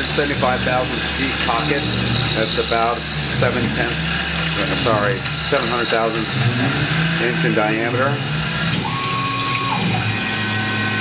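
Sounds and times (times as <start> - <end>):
milling machine cutting metal: 0.0 - 11.0
steady machine whine: 0.0 - 11.0.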